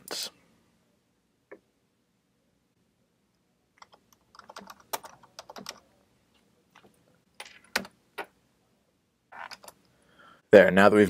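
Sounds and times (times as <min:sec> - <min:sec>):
keyboard typing clicks: 0:03.8 - 0:05.8.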